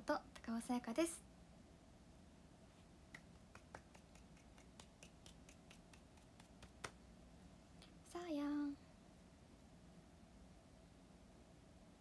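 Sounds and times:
faint irregular clicks: 0:03.1 - 0:07.0.

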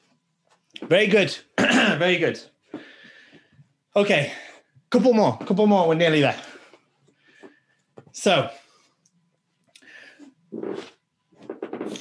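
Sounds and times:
quiet breath: 0:02.7 - 0:04.8, 0:06.4 - 0:09.1, 0:09.8 - 0:10.4.

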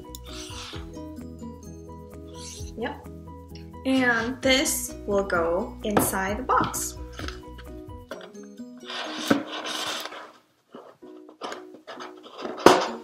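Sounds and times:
plucked background music: 0:00.0 - 0:10.2, 0:11.0 - 0:13.0.

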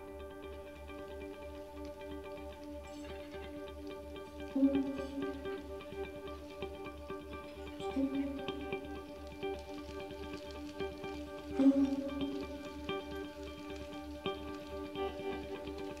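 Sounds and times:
low pulse: 0:00.0 - 0:16.0
small clicks and ticks: 0:00.0 - 0:16.0.

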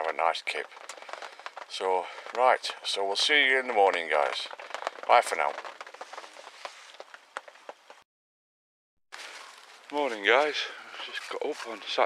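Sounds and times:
fire crackling: 0:00.0 - 0:08.0, 0:09.1 - 0:12.0
faint outdoor hiss: 0:09.2 - 0:12.0.

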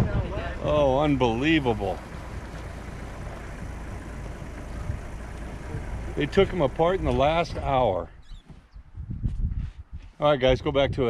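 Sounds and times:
vehicle engine running: 0:00.0 - 0:08.1.

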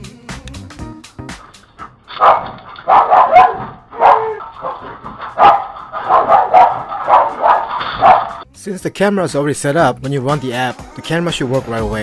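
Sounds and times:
dog barking: 0:02.1 - 0:08.4.

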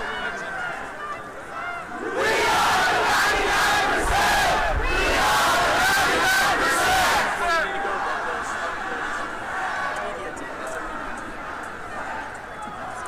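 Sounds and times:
crowd shouting: 0:00.0 - 0:13.0.

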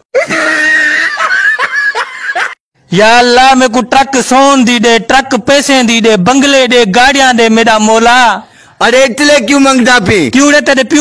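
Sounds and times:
man laughing: 0:00.2 - 0:02.6.

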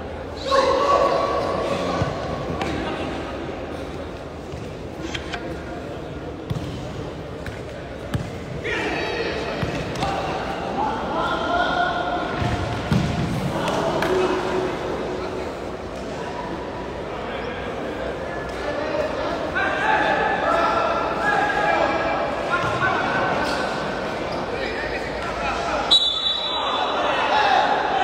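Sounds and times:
people shouting and talking: 0:00.0 - 0:28.0.

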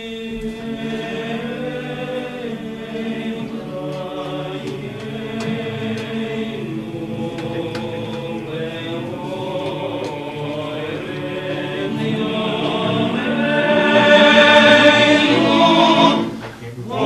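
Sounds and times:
male choir singing in harmony: 0:00.0 - 0:17.0.

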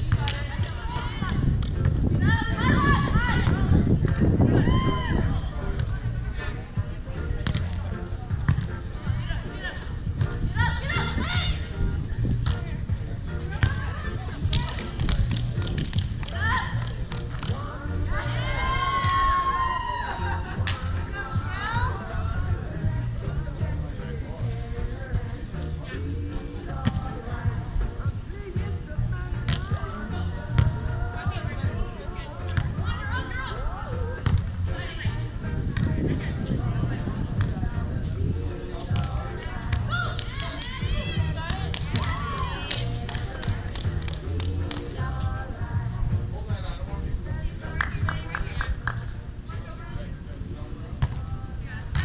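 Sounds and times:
background music: 0:00.0 - 0:52.0
background voices: 0:00.0 - 0:52.0
volleyball slap: 0:07.4 - 0:07.8, 0:14.5 - 0:17.6, 0:29.4 - 0:29.7, 0:30.6 - 0:30.8.

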